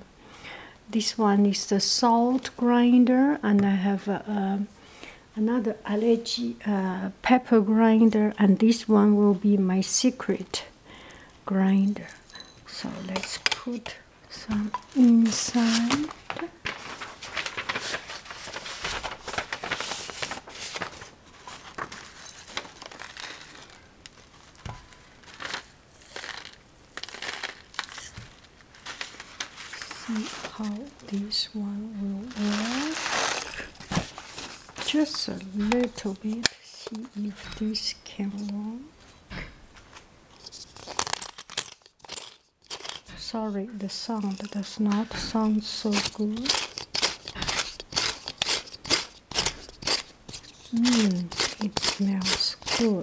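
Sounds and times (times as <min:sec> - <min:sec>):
paper rustling: 0:14.5 - 0:31.4, 0:32.2 - 0:38.6, 0:39.8 - 0:43.1, 0:43.9 - 0:53.0
peppercorns crackling into grinder: 0:22.2 - 0:28.8, 0:43.9 - 0:53.0.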